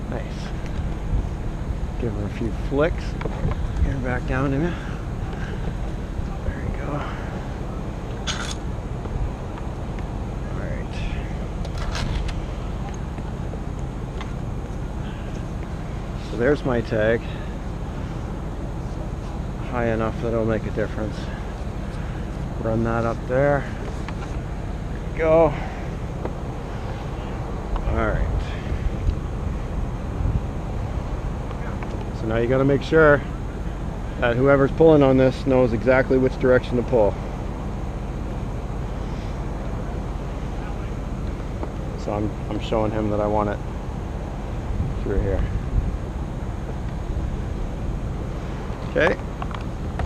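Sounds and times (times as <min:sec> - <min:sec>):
wind buffeting microphone: 0:00.0 - 0:20.1, 0:20.8 - 0:35.0, 0:43.4 - 0:50.0
truck engine running: 0:00.0 - 0:50.0.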